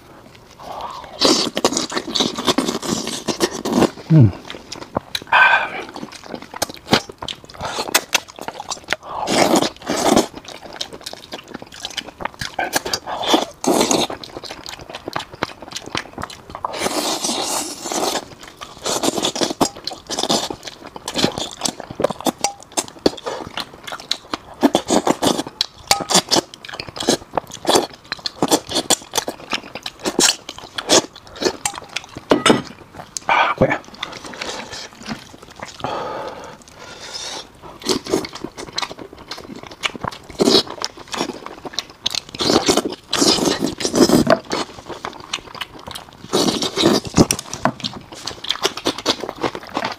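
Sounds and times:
chewing and biting fish: 0.0 - 49.9.

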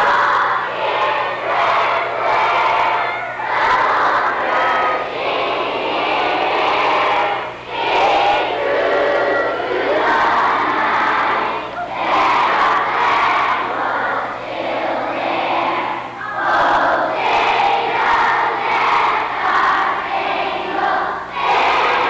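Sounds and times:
schoolchildren singing together: 0.0 - 22.0.

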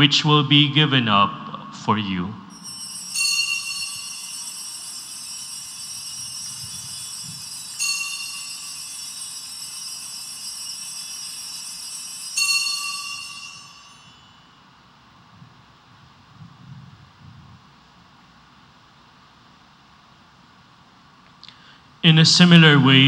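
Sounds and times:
altar bell ringing: 2.5 - 15.0.

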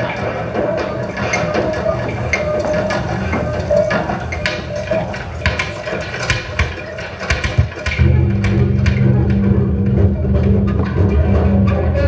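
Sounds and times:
low hum: 8.0 - 12.0.

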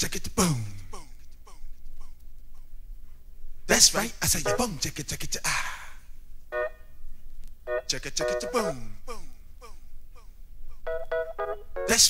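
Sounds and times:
funk music: 4.4 - 4.8, 7.7 - 8.8, 10.9 - 12.0
held chords: 4.4 - 4.8, 6.5 - 6.8, 7.7 - 8.9, 10.9 - 12.0.

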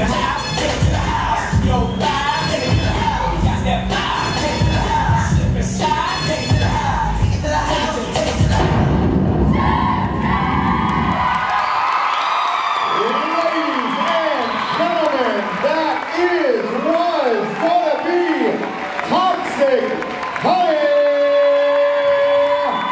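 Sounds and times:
pop dance music with heavy beat: 0.0 - 11.3
audience cheering: 9.4 - 22.9.

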